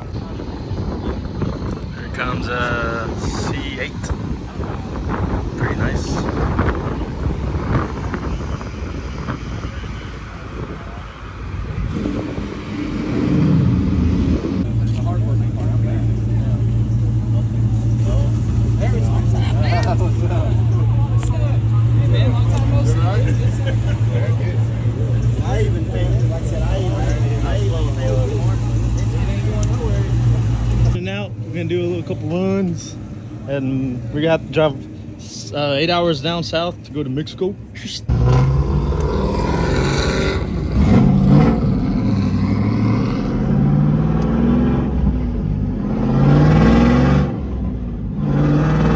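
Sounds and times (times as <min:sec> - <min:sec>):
car engine: 0:00.0 - 0:48.9
people talking: 0:01.9 - 0:04.2, 0:05.5 - 0:06.6, 0:14.7 - 0:38.1.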